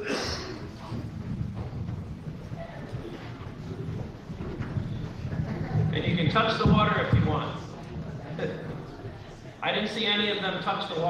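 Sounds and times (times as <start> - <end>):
footsteps and movement on floor: 0.4 - 9.6.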